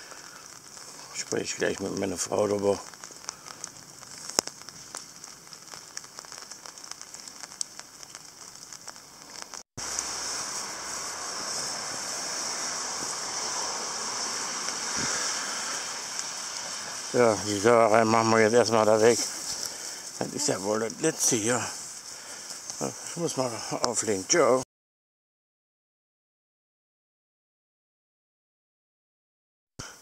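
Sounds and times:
rain in a forest: 0.0 - 24.6, 29.8 - 30.0
faint ticks: 2.8 - 9.6.

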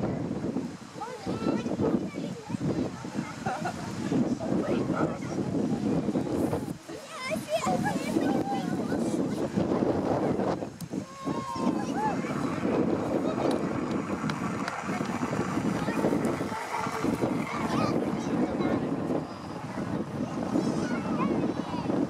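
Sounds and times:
crowd babble of many voices: 0.0 - 22.0
wind buffeting microphone: 0.0 - 22.0.

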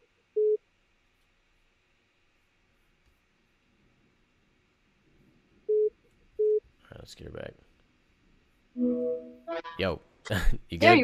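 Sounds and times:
faint room hum: 0.0 - 11.0.

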